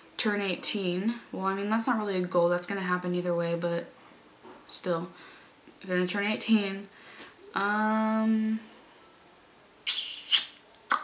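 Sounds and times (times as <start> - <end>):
sharp lip click: 9.9 - 11.0.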